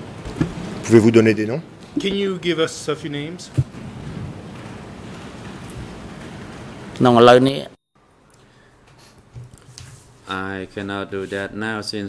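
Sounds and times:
microphone background hiss: 0.0 - 7.8, 9.4 - 12.0.

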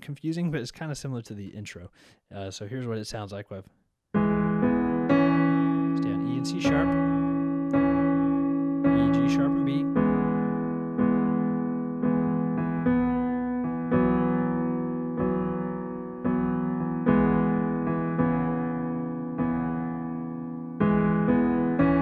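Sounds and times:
person speaking: 0.0 - 3.8, 5.9 - 7.4, 8.9 - 10.0
slow piano melody: 4.1 - 22.0.

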